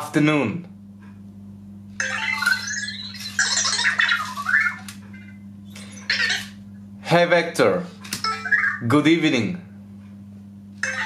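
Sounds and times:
robot electronic chirps and beeps: 0:02.0 - 0:06.6.

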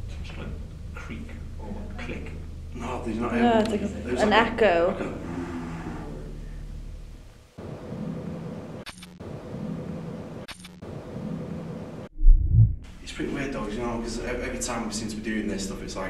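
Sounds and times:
low steady hum: 0:00.0 - 0:08.5, 0:12.1 - 0:16.0.

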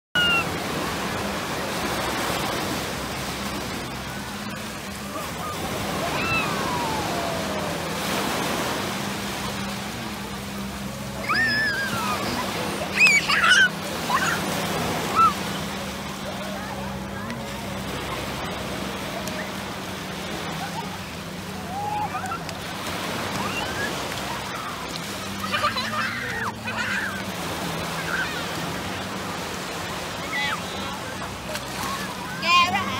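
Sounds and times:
children crying out: 0:00.2 - 0:00.6, 0:05.0 - 0:09.6, 0:11.0 - 0:15.7, 0:20.4 - 0:29.1, 0:30.0 - 0:32.9
sea surf breaking on sand: 0:00.2 - 0:32.9.

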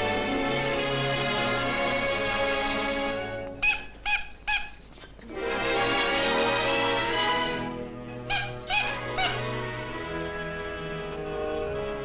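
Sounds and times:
orchestra playing chords: 0:00.0 - 0:03.6, 0:05.3 - 0:12.0.

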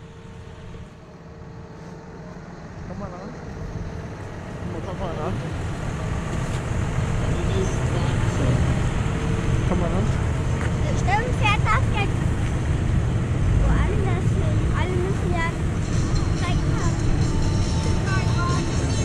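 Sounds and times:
tractor diesel engines rumbling: 0:00.0 - 0:19.0
voices: 0:02.2 - 0:19.0.

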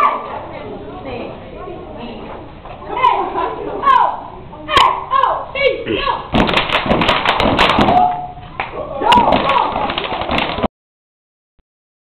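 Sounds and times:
dancers stomping and clapping: 0:06.3 - 0:10.7.

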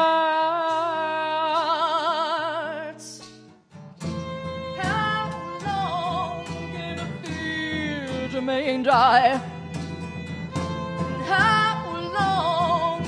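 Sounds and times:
acoustic guitar: 0:00.0 - 0:13.0
violin: 0:00.0 - 0:13.0.

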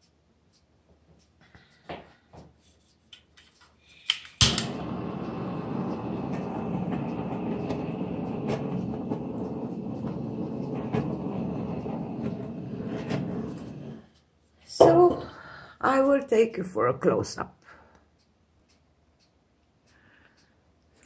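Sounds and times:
electric blower running: 0:04.5 - 0:12.4.

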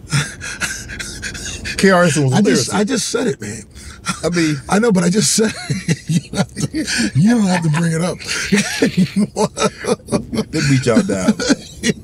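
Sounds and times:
man laughing breathily: 0:00.0 - 0:01.9, 0:05.4 - 0:12.0
man speaking: 0:01.7 - 0:11.6.

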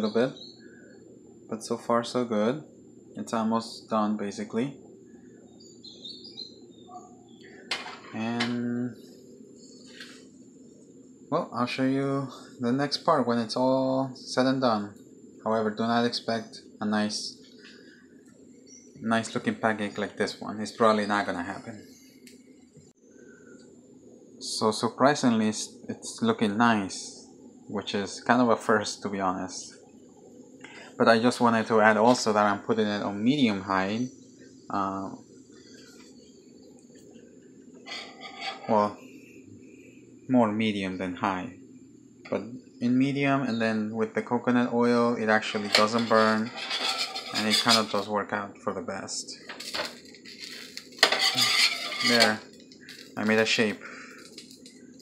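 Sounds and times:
faint high-pitched whine: 0:00.0 - 0:55.0
spatula scraping frying pan: 0:37.8 - 0:38.8, 0:45.4 - 0:48.1, 0:49.6 - 0:53.1.

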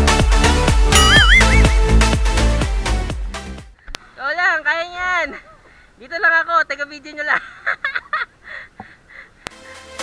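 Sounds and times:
person laughing and squealing: 0:01.0 - 0:01.8.

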